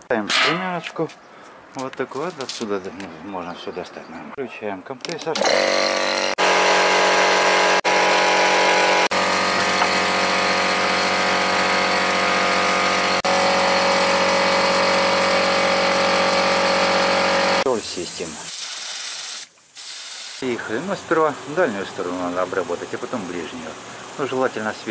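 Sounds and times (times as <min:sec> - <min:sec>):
air compressor humming: 0:05.4 - 0:17.7, 0:21.0 - 0:24.6
spray gun hissing: 0:15.7 - 0:20.4.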